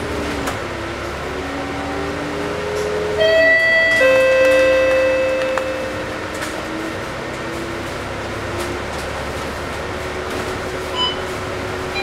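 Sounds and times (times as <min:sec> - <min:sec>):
bus drivetrain whining: 0:00.0 - 0:12.0
two-note chime: 0:03.2 - 0:06.1.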